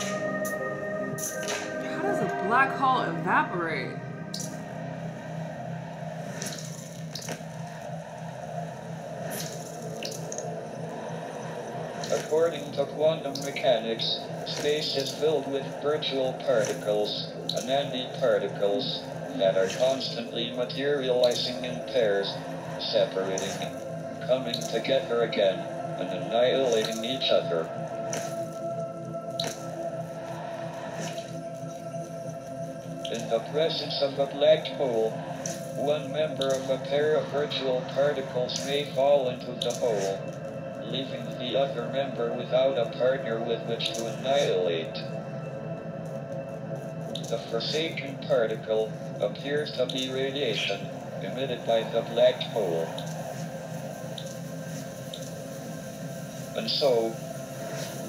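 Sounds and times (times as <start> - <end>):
held electronic chord: 0.0 - 7.9
low hum: 0.0 - 58.0
grainy hiss: 11.8 - 27.5, 33.1 - 42.5, 47.2 - 58.0.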